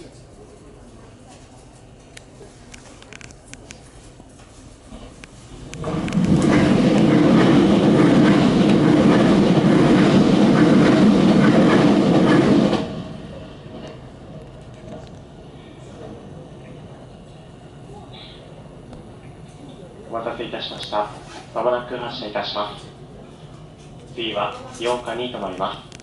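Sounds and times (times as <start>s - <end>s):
train rushing past: 4.9s - 16.5s.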